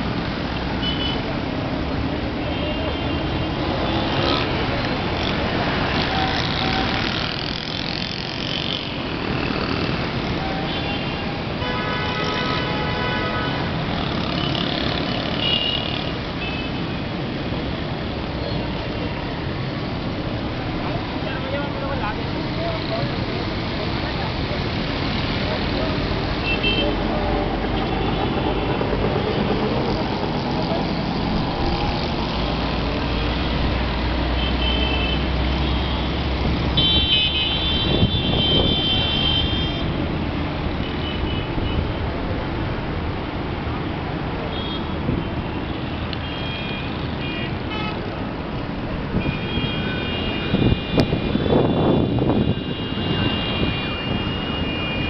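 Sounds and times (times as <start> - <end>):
traffic engines din: 0.0 - 55.0
car horns blasting: 36.7 - 39.8.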